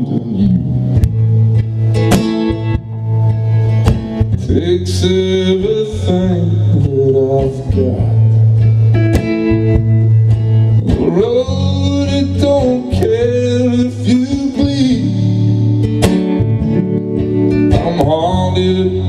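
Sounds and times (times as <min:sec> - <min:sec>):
acoustic guitar picking: 0:00.0 - 0:19.0
man singing: 0:04.3 - 0:08.5, 0:10.8 - 0:15.8, 0:17.7 - 0:19.0.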